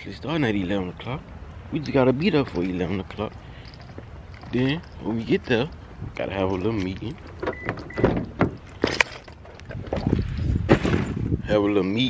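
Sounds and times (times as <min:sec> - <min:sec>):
sharp knocks and clicks: 0:05.4 - 0:11.2.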